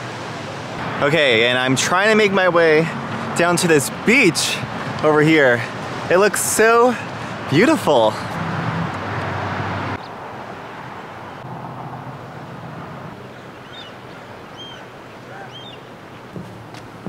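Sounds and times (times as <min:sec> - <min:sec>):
distant surf: 0:00.0 - 0:17.0
wind: 0:00.0 - 0:17.0
high bird chirps: 0:13.2 - 0:14.9.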